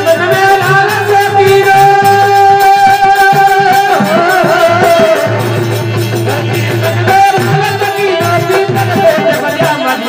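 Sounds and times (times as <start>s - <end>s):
dholak drum strokes: 0.0s - 10.0s.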